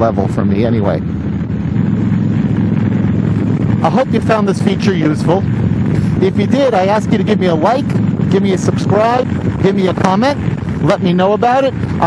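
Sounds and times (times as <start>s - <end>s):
motorcycle engine running: 0.0s - 12.0s
wind noise on microphone: 0.0s - 12.0s.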